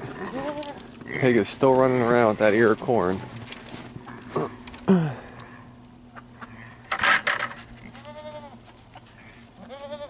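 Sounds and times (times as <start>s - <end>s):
goat bleating: 0.0s - 1.2s, 7.7s - 10.0s.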